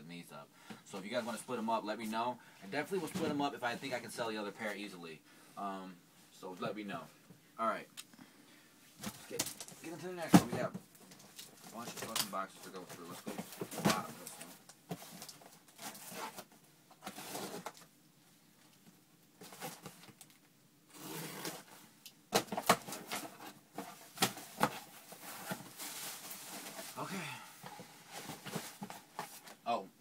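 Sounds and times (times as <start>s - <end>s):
rustling: 22.5s - 29.6s.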